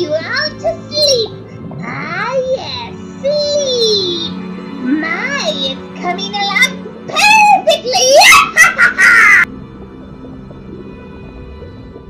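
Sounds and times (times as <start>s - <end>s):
background music: 0.0s - 12.0s
cartoon witch cackling: 8.2s - 9.5s.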